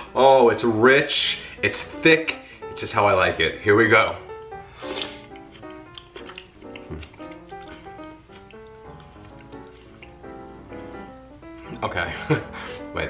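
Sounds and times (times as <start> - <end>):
plucked notes music: 0.6 - 13.0.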